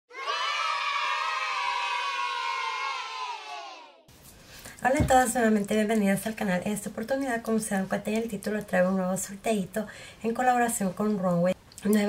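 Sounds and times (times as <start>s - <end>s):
group of voices cheering: 0.1s - 4.1s.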